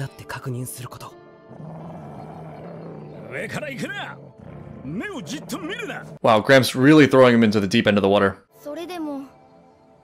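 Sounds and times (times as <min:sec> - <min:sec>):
dog snarling and growling: 0:01.5 - 0:06.3.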